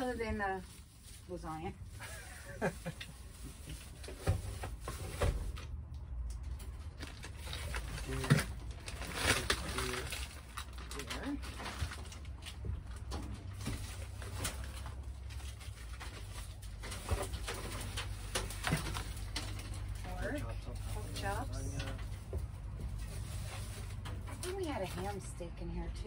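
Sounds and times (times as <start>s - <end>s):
plastic bags crinkling: 6.8s - 22.1s.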